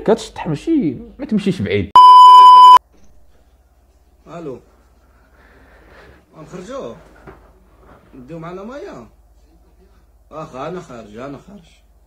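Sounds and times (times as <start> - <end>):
high test-tone beep: 2.0 - 2.8.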